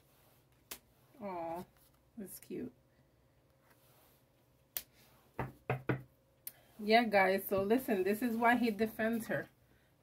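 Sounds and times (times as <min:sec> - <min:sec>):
knocks on wooden tabletop: 0:05.4 - 0:06.1.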